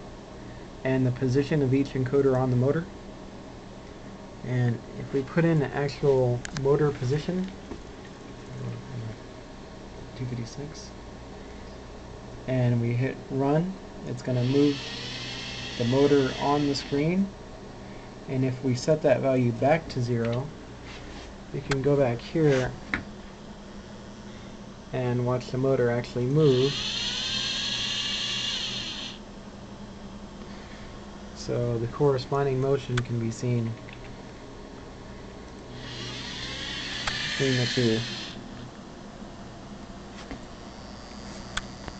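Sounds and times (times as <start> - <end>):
faint room noise hiss: 0.0 - 15.0, 15.8 - 41.9
steady low hum: 0.0 - 41.9
small motor whining: 14.4 - 17.1, 26.5 - 29.2, 35.7 - 38.4.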